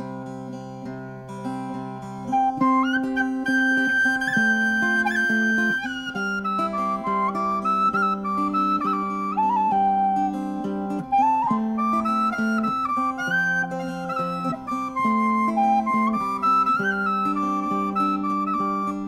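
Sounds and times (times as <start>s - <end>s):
guitar accompaniment: 0.0s - 19.0s
flute melody: 2.3s - 19.0s.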